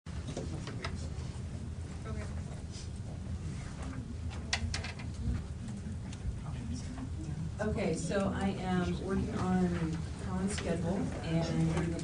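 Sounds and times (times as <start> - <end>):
muffled murmur of voices: 0.6 - 12.0.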